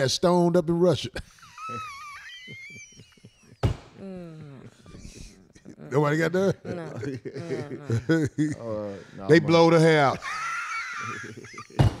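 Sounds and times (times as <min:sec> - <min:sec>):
person laughing in high squeal: 0:01.4 - 0:03.6, 0:10.2 - 0:12.0.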